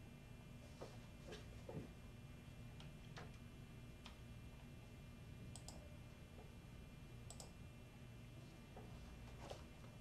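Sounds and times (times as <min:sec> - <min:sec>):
low steady hum: 0:00.0 - 0:10.0
computer clicks: 0:05.5 - 0:06.0, 0:07.2 - 0:07.6.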